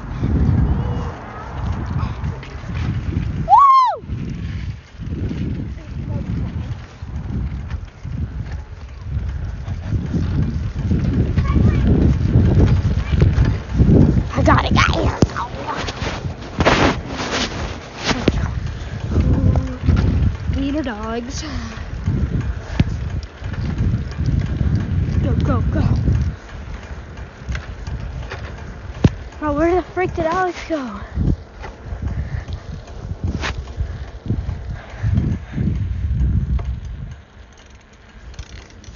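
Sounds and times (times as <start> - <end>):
wind buffeting microphone: 0.0 - 38.9
clothing rubbing on microphone: 14.3 - 18.6.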